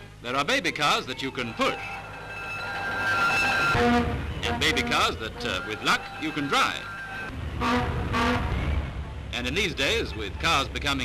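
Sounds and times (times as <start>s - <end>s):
car horn toots: 3.7s - 6.7s, 7.6s - 9.2s
car engine rumbling: 3.8s - 11.0s.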